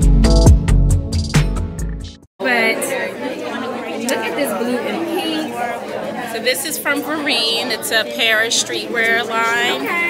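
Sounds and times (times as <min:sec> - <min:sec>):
crowd chatter: 0:02.4 - 0:10.0.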